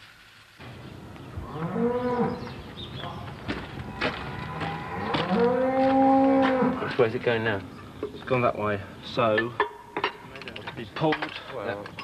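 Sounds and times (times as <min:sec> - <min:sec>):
cattle mooing: 0:01.5 - 0:02.5, 0:03.8 - 0:06.9.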